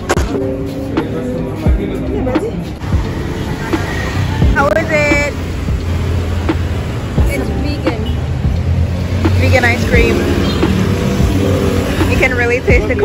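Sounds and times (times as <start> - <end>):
vehicle engine humming: 0.0 - 13.0
voices or music: 0.0 - 13.0.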